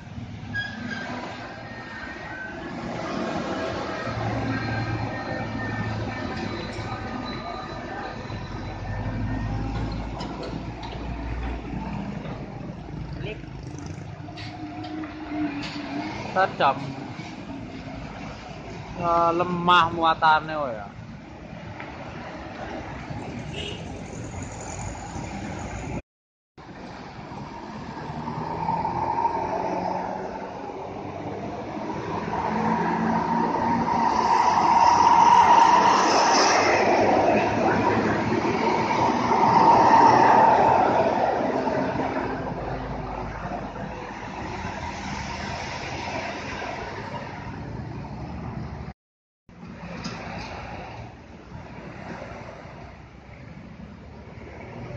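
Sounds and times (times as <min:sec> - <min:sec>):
coach engine and tyres: 0:00.0 - 0:19.6, 0:20.9 - 0:26.0, 0:26.6 - 0:48.9, 0:49.5 - 0:54.9.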